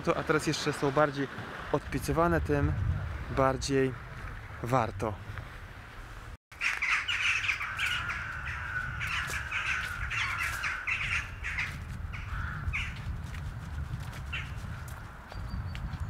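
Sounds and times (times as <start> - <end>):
low steady rumble: 1.7 - 6.4
crows cawing: 6.6 - 13.0.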